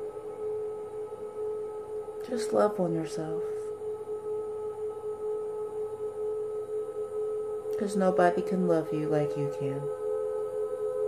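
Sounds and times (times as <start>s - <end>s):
meditation drone: 0.0s - 11.0s.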